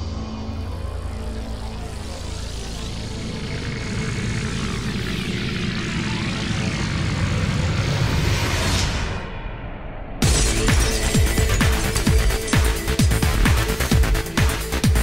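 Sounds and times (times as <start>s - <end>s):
rumbling engine-like swell: 0.0s - 14.9s.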